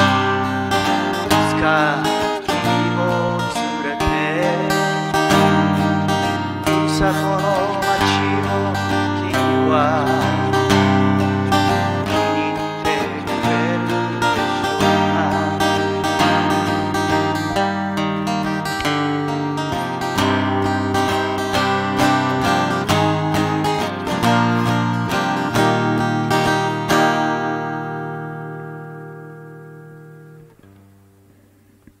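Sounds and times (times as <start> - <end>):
acoustic guitar picking: 0.0 - 32.0.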